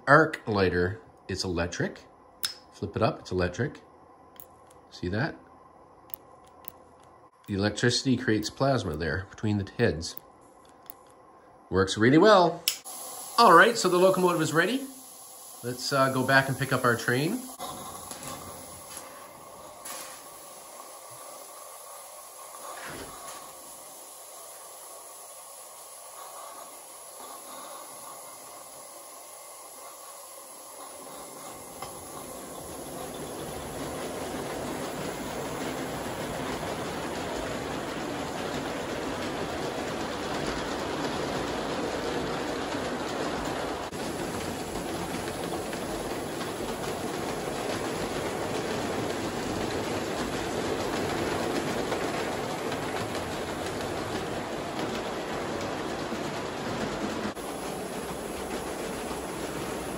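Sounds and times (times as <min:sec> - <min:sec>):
model steam locomotive hissing: 0:07.5 - 0:11.0, 0:11.7 - 0:59.9
freight cars rolling on track: 0:13.2 - 0:59.9.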